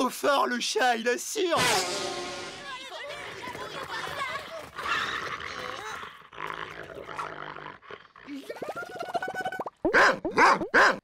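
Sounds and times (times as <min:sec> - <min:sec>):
children's voices: 0:02.4 - 0:04.8.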